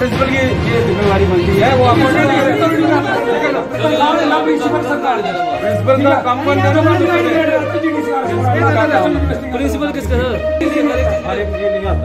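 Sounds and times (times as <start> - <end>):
people talking over each other: 0.0 - 12.0.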